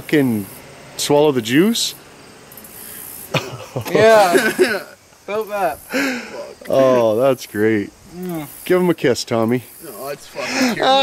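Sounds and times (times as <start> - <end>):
person laughing: 3.3 - 5.0, 10.4 - 11.0.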